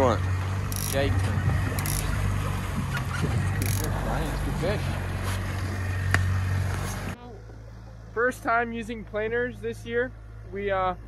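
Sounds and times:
outboard motor droning: 0.0s - 11.0s
wind: 0.0s - 11.0s.

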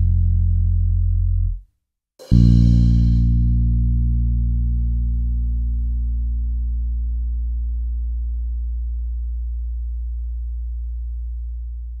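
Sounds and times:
bass guitar note ringing: 2.2s - 12.0s.

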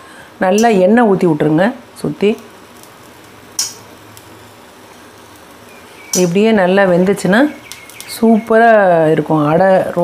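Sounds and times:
food sizzling on a griddle: 0.5s - 10.0s.

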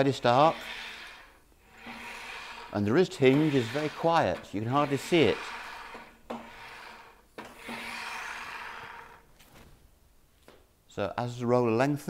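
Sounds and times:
roller rolling hiss: 0.0s - 9.2s.

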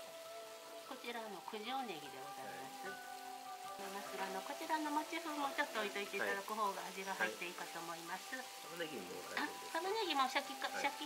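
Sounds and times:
food sizzling in a pan: 0.0s - 11.0s
soft background music: 0.0s - 11.0s.

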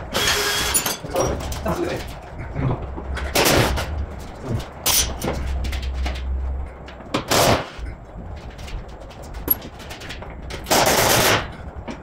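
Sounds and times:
pneumatic impact wrench hammering: 0.1s - 1.0s.

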